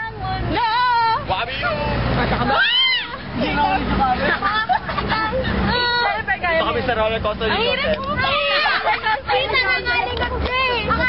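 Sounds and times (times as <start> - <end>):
teenagers chattering and shouting: 0.0 - 11.0
truck engine rumble: 0.0 - 11.0
loud rising-and-falling shout: 2.5 - 3.2.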